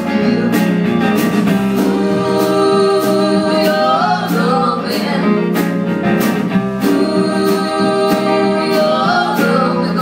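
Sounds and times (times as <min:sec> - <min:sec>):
live rock band playing: 0:00.0 - 0:10.0
person singing: 0:01.8 - 0:05.4, 0:06.8 - 0:10.0.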